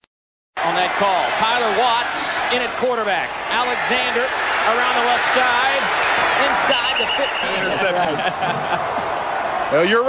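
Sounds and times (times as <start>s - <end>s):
stadium crowd noise: 0.6s - 10.0s
voices: 0.9s - 8.8s.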